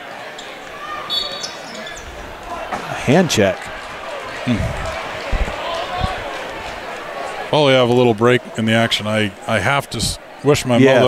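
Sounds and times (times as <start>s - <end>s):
crowd murmuring: 0.0s - 11.0s
referee's whistle blast: 1.0s - 2.0s.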